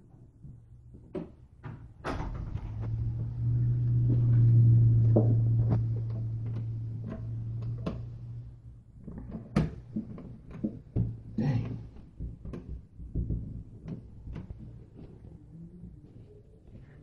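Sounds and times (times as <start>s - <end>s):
low hum: 2.0s - 10.2s.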